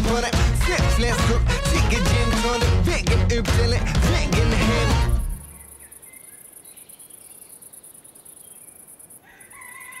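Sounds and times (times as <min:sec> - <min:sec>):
insects chirping: 0:05.2 - 0:10.0
thin bird calls: 0:05.4 - 0:10.0.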